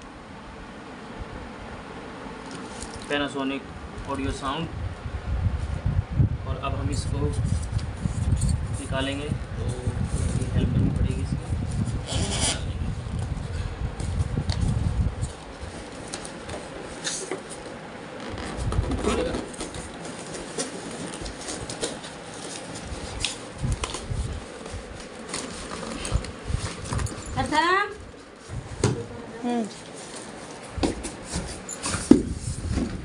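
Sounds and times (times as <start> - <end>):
low rumble of handling: 3.9 - 33.0
cardboard and plastic packaging rustling: 14.0 - 33.0.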